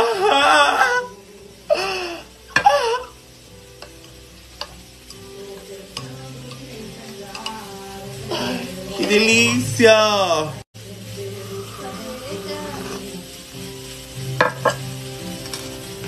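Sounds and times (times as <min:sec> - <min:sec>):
spoon stirring coffee: 0:03.8 - 0:09.3.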